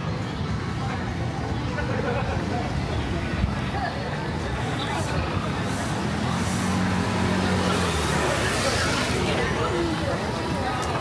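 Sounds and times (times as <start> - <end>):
street murmur: 0.0 - 11.0.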